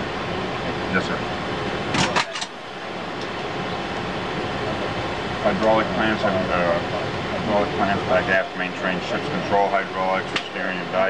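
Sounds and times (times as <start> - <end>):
ventilation and machinery hum: 0.0 - 11.0.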